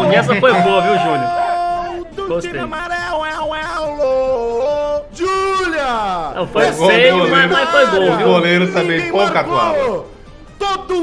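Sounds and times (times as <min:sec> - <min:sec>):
person singing: 0:00.0 - 0:05.4.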